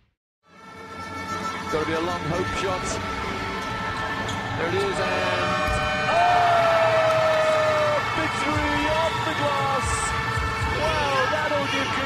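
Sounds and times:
arena buzzer horn: 0.6s - 6.1s, 8.0s - 12.0s.

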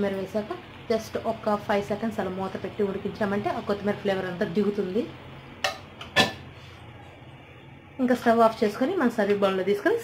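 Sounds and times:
metal lid clanking on pan: 5.6s - 6.4s.

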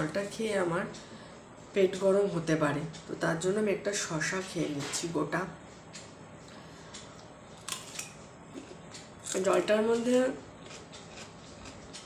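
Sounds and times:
cucumber crunching: 7.6s - 12.0s.

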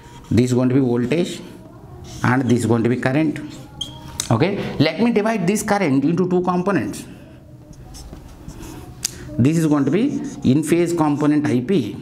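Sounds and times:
marker pen on whiteboard: 0.0s - 5.4s, 7.6s - 12.0s.

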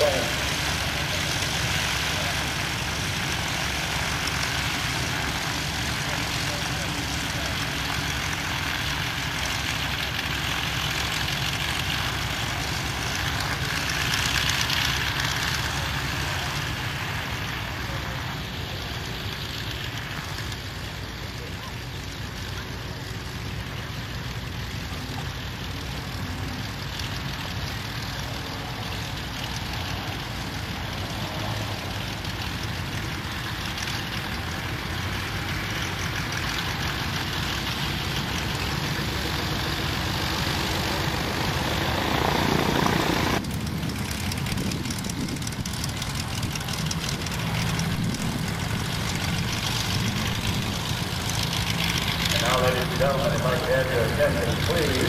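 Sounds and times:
light airplane engine and propeller: 0.0s - 55.0s.

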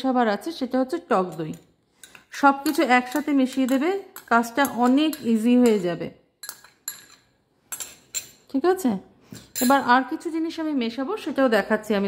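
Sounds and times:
kitchen bowls and utensils clinking: 1.2s - 8.6s, 9.3s - 10.2s.

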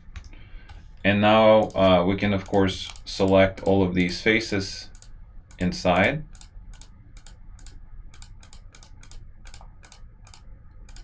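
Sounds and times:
computer mouse clicking: 1.6s - 11.0s.

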